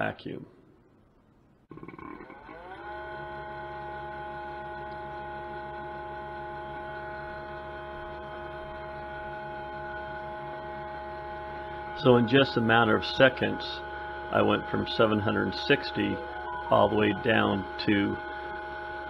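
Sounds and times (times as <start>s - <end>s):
vacuum pump running: 1.7s - 19.0s.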